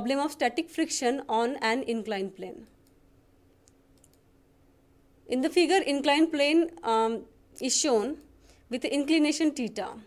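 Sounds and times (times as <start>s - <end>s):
faint steady hum: 0.0s - 10.0s
faint clicks: 3.6s - 4.3s.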